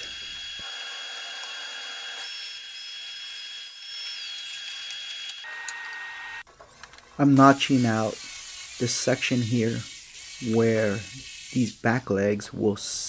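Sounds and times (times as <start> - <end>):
table saw whining: 0.0 - 6.5.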